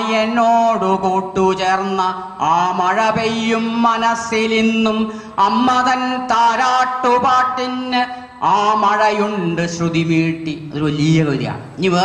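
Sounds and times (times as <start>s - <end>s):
man chanting a poem: 0.0s - 12.0s.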